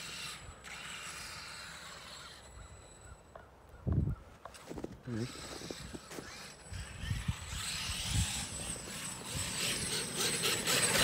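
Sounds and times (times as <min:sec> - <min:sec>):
toy truck drivetrain whirring: 0:00.0 - 0:03.4, 0:04.5 - 0:11.0.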